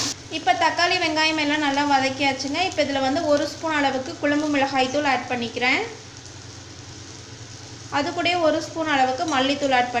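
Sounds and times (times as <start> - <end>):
food sizzling in oil: 0.0 - 10.0.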